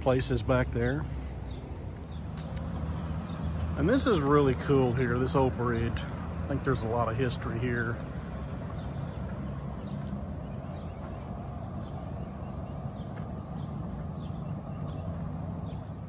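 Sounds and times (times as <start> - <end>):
bike tyres rolling on wooden bridge: 2.0 - 16.0
faint bird chirps: 7.8 - 16.0.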